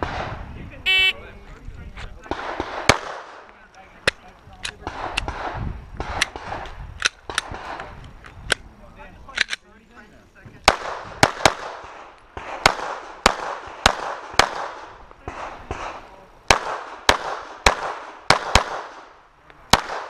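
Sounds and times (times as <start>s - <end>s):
pistol shots with echo: 2.2s - 3.5s, 4.8s - 7.9s, 10.6s - 20.0s.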